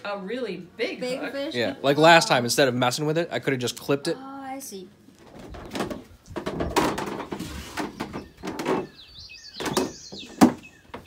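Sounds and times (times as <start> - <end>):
handling knocks and rustling: 5.2 - 11.0
small bird chirping: 7.9 - 11.0.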